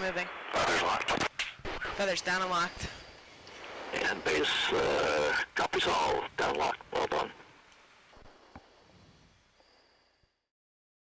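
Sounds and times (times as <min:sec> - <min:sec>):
faint hiss: 0:00.0 - 0:10.4.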